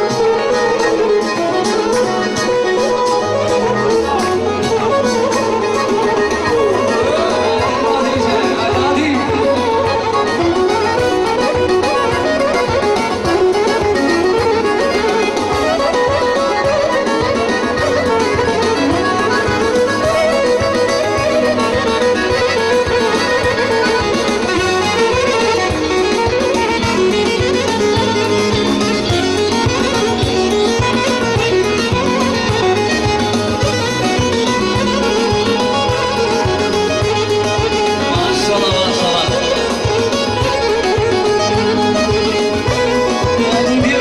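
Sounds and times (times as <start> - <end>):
dance music from live band: 0.0 - 44.0.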